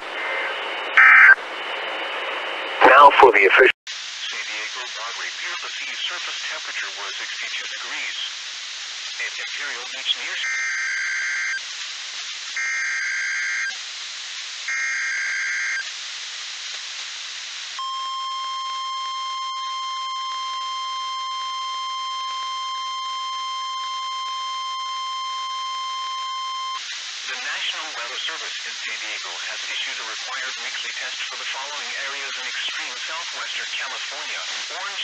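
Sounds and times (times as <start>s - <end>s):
radio static hiss: 0.0s - 1.4s, 2.8s - 10.6s, 11.3s - 12.8s, 13.4s - 35.0s
weather radio alert tone: 1.0s - 1.4s, 2.8s - 3.7s, 17.8s - 26.8s.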